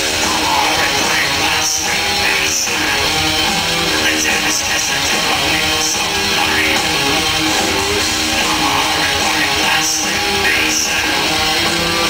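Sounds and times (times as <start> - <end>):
black metal band playing live: 0.0 - 12.0.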